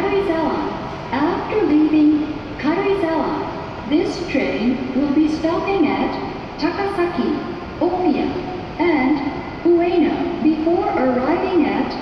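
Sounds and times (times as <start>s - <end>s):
woman's announcement over loudspeaker: 0.0s - 12.0s.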